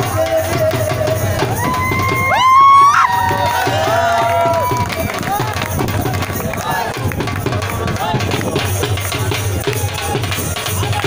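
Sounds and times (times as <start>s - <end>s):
dhol drum beating: 0.0s - 11.0s
people shouting and cheering: 0.0s - 11.0s.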